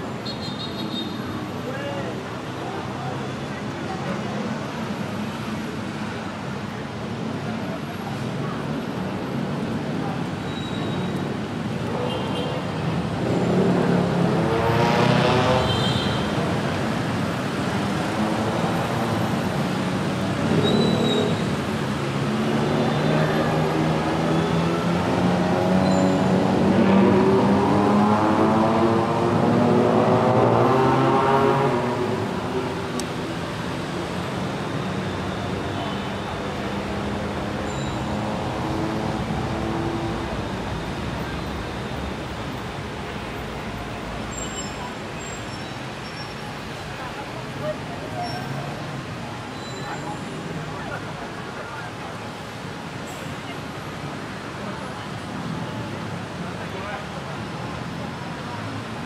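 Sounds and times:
motorbikes and cars pulling away: 12.8s - 46.7s
tyres hissing on wet road: 29.0s - 59.0s.

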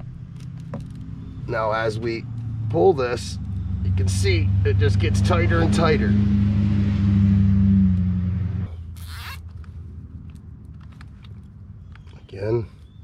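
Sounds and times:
zip tie rasp: 8.9s - 9.6s.

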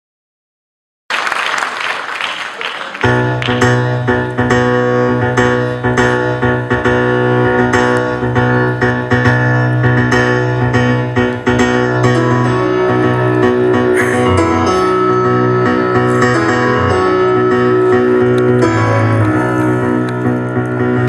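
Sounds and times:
solo piano repeated chords: 3.0s - 21.0s.

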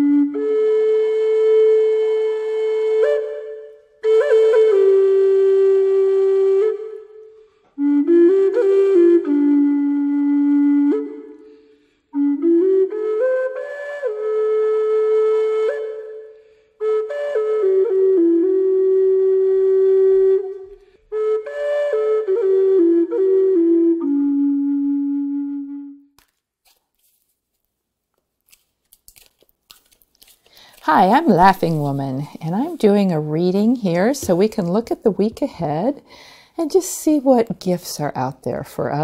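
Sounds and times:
solo flute melody: 0.0s - 26.2s.

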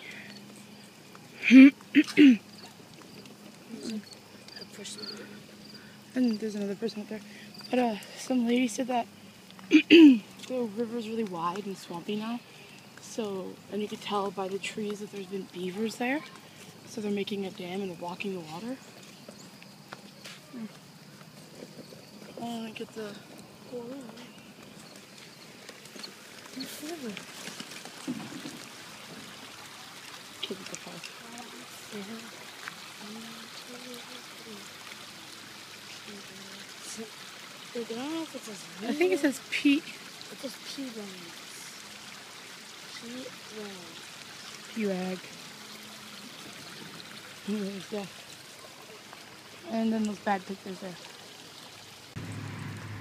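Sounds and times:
person humming: 1.4s - 2.4s
river water rushing: 22.8s - 53.0s
stroller wheels clicking and knocking: 23.2s - 29.3s.

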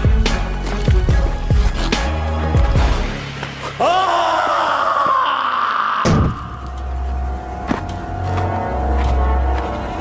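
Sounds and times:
background music with low bass: 0.0s - 3.6s.

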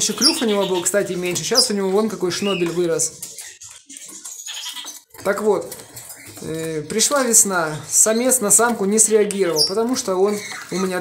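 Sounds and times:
people talking: 0.0s - 3.2s, 5.2s - 5.8s, 6.4s - 11.0s.

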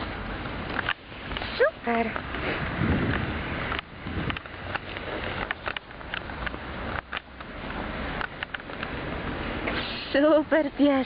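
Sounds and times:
rustling with light crackles: 0.0s - 9.0s.

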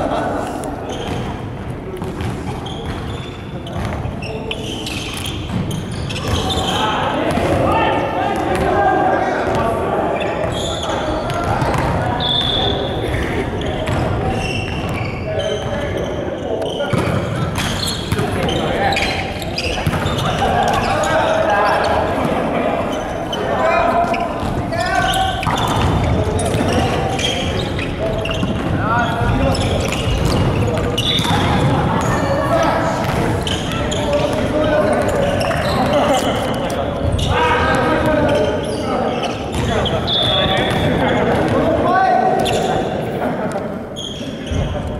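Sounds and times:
players calling out: 2.2s - 44.9s.

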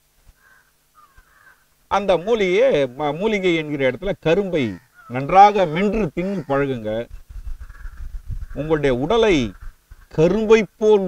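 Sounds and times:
crow cawing faintly: 0.2s - 3.7s, 4.4s - 10.4s.

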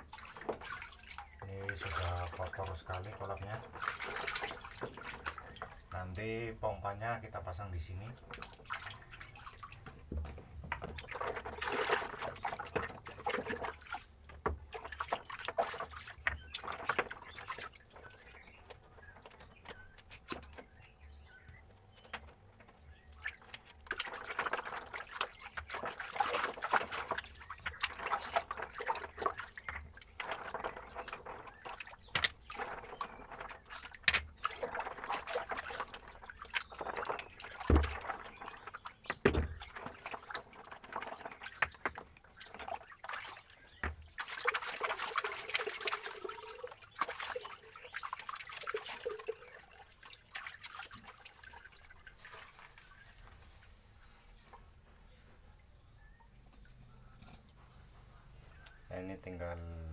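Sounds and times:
hand splashing through pond water: 0.0s - 6.2s, 10.8s - 18.2s, 23.1s - 53.8s.

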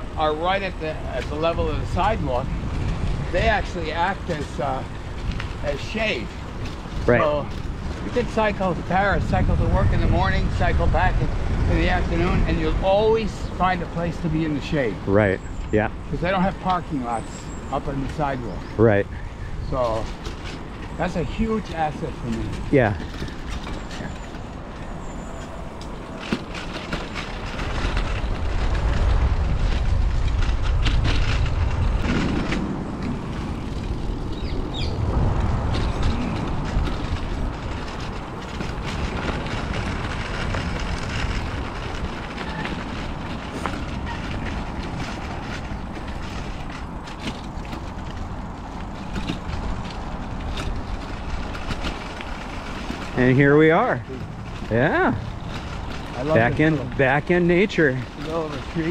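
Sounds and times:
bicycle rattles and clicks: 0.0s - 58.9s
bicycle tyres on gravel: 0.0s - 58.9s.

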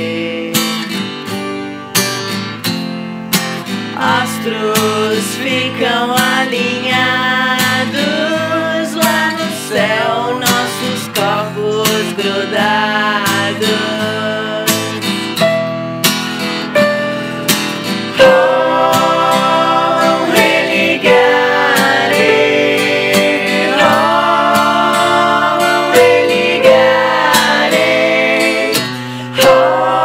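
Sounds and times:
strummed acoustic guitar: 0.0s - 30.0s
person singing: 4.0s - 15.0s, 18.2s - 30.0s.

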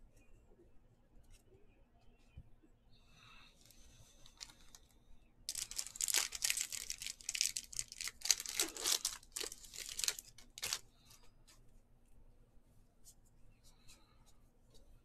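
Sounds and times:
card pack wrapper tearing: 5.5s - 10.8s.

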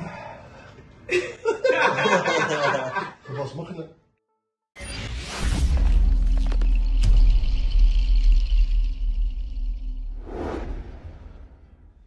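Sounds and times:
whoosh: 7.1s - 12.0s.

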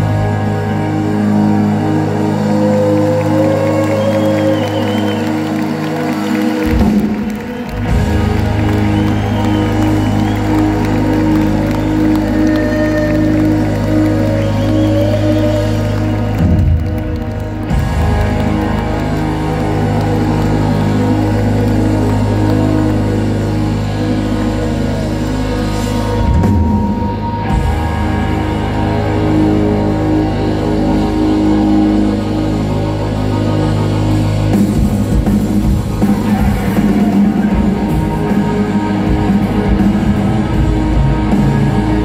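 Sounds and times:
keyboard chords: 0.0s - 42.0s
low bass: 0.0s - 42.0s.

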